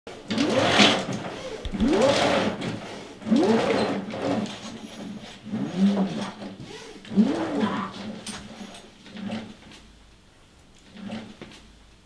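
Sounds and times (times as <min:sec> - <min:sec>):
roller shutter mechanism whirring: 0:00.1 - 0:09.9, 0:10.8 - 0:11.4.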